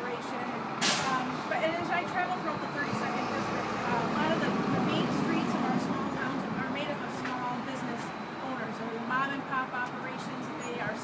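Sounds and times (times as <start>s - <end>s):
bus passing: 0.0s - 11.0s
woman talking: 0.0s - 11.0s.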